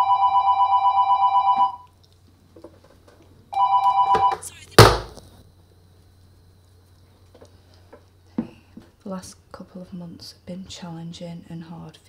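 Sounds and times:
desk telephone ringing: 0.0 - 1.9, 3.5 - 4.4.

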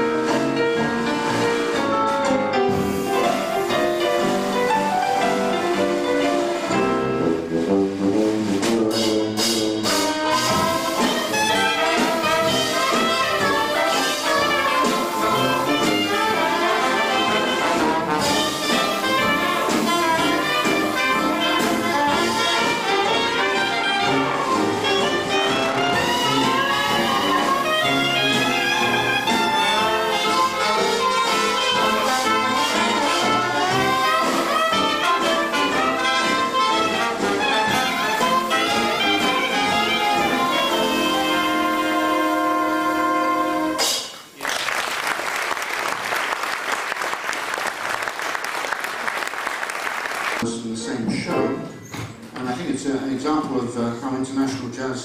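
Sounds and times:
sharp drum strokes: 0.0 - 44.3
traditional jazz band playing: 0.0 - 44.4.

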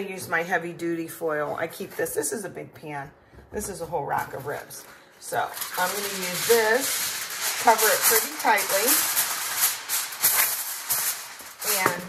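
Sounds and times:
aluminum foil crinkling: 4.1 - 12.0.

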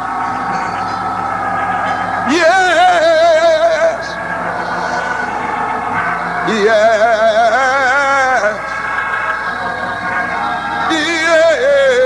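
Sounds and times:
held instrumental chords: 0.0 - 12.0
person singing with vibrato: 0.0 - 12.0.

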